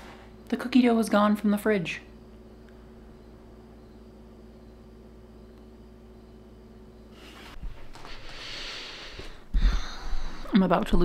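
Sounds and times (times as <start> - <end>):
steady low hum: 0.0 - 11.0
faint steady tone: 1.8 - 7.5.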